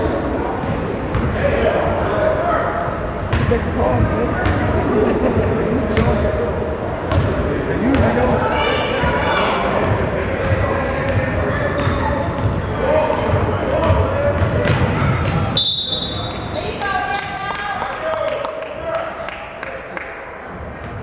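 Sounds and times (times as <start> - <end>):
shrill referee's whistle: 15.6 - 16.7.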